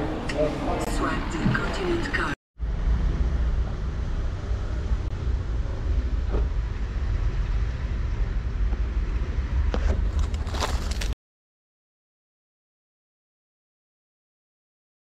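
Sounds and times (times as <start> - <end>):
low outdoor rumble: 0.0 - 11.2.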